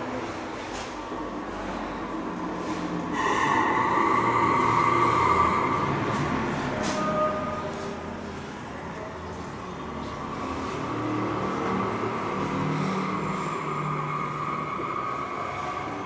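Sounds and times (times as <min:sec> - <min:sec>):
road traffic noise: 0:00.0 - 0:16.0
vehicle engine passing: 0:00.0 - 0:16.0.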